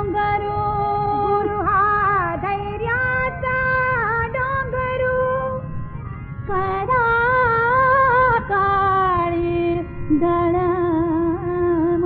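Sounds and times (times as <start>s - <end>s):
woman singing classical song: 0.0s - 5.6s, 6.5s - 12.0s.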